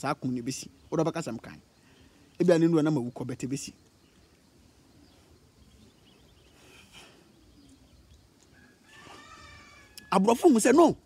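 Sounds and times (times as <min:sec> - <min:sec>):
faint animal call: 0:08.5 - 0:10.2.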